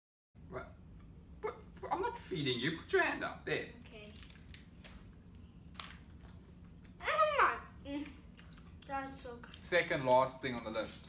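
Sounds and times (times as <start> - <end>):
snack packet rustling: 4.0 - 6.7.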